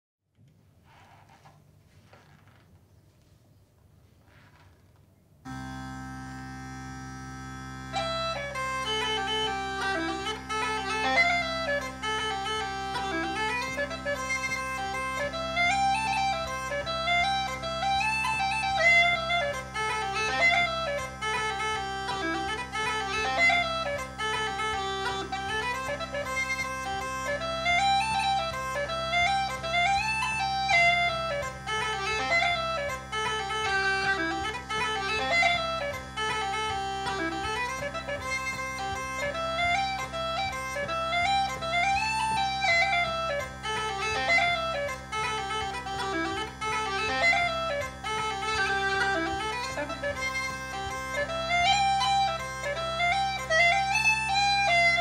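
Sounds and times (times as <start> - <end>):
bagpipe chanter melody: 5.5 - 55.0
bagpipe drones humming: 5.5 - 55.0.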